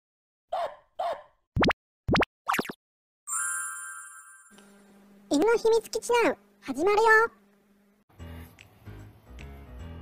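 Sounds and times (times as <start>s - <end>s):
cartoon plops: 1.6s - 2.8s
ringing chime: 3.3s - 4.6s.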